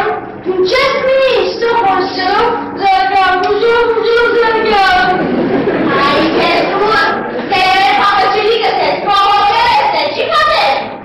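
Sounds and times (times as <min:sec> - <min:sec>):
child singing: 0:05.9 - 0:10.9.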